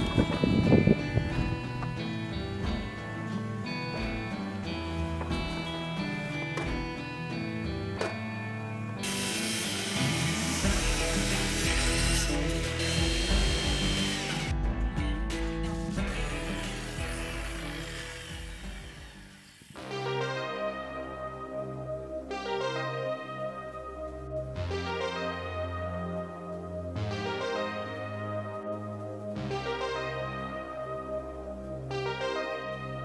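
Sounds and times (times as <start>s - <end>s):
background music: 0.0s - 33.0s
circular saw cutting wood: 9.0s - 14.5s, 16.0s - 19.9s.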